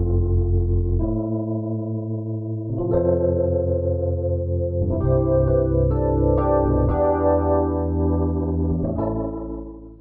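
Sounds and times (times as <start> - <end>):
electric piano chords: 0.0 - 10.0.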